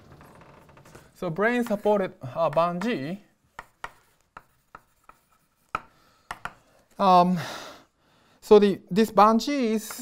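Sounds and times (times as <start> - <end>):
chalk tapping on blackboard: 1.6 - 6.6.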